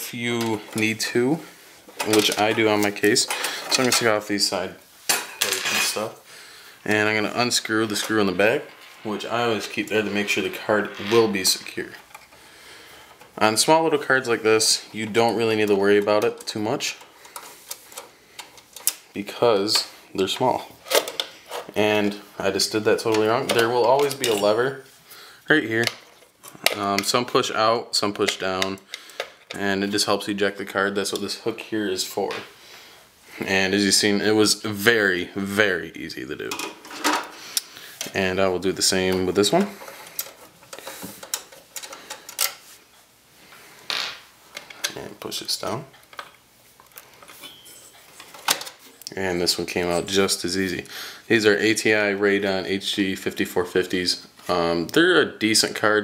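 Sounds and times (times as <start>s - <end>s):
hands clicking and tapping hardware: 39.1s - 42.6s.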